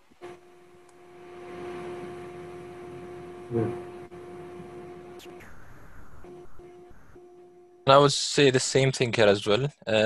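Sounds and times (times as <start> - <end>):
electrical hum with hiss: 0.0 - 10.0
man saying a word: 3.5 - 3.8.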